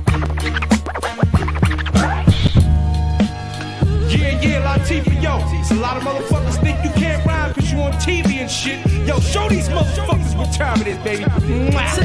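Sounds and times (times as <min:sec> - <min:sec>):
hip hop beat: 0:00.0 - 0:12.0
record scratching on turntables: 0:00.0 - 0:12.0.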